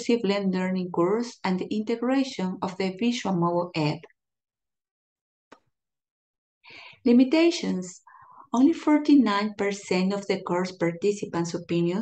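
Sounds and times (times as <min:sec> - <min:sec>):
faint breath: 0:06.6 - 0:07.0, 0:08.0 - 0:08.5.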